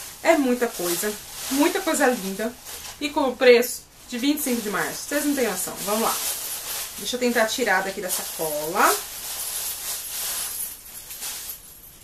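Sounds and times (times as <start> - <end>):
packaging rustling: 0.0 - 3.3, 4.0 - 12.0
metal chain clinking: 5.2 - 12.0.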